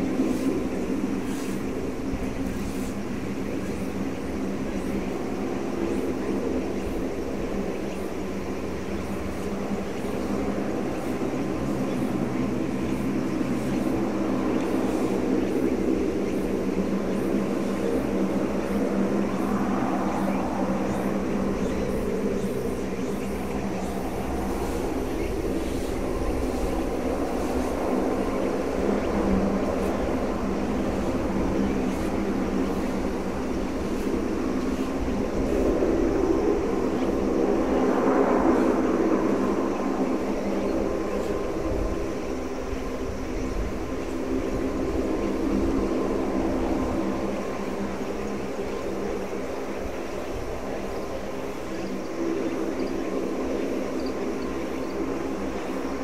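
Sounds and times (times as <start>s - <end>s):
propeller aircraft drone: 0.0s - 56.0s.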